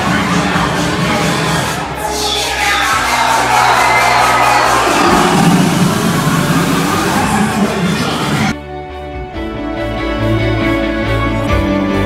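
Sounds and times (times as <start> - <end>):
loud dance music: 0.0 - 8.6
crowd noise and cheering: 0.0 - 12.0.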